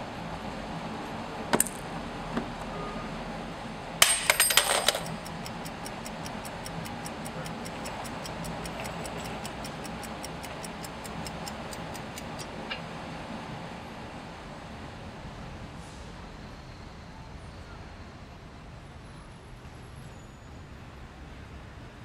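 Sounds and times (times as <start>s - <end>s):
faint street ambience: 0.0s - 22.0s
clock clattering on asphalt: 1.5s - 1.9s, 4.0s - 12.8s
clock ticking: 5.0s - 12.6s.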